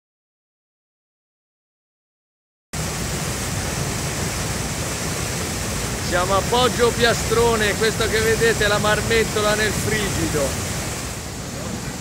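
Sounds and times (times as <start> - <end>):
water rushing over a weir: 2.8 - 12.0.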